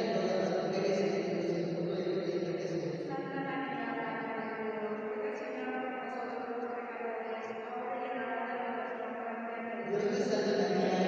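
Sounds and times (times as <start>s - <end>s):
voices chanting prayers: 0.0s - 4.6s, 9.6s - 11.0s.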